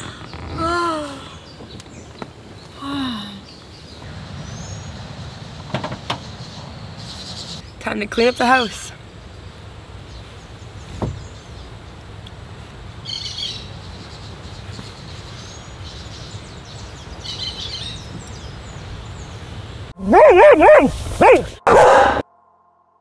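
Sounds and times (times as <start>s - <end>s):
birds chirping: 0.0s - 12.1s, 13.0s - 22.2s.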